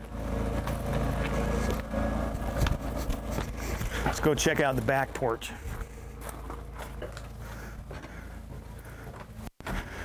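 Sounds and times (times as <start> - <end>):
footsteps: 0.0 - 10.0
steady low rumble: 0.0 - 10.0.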